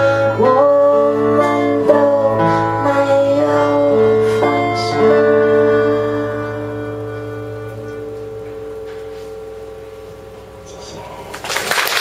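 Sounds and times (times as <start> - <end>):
band chord ringing out: 0.0 - 11.5.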